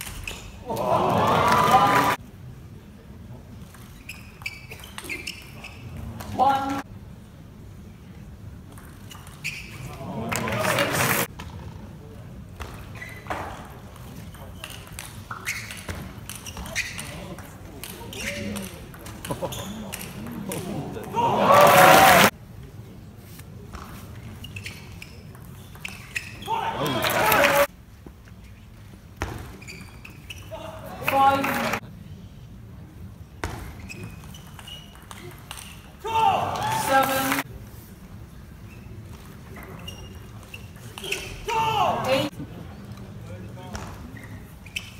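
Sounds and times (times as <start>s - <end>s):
crowd shouting and cheering: 0.6s - 2.2s, 21.0s - 22.3s, 26.5s - 27.7s, 36.0s - 37.4s.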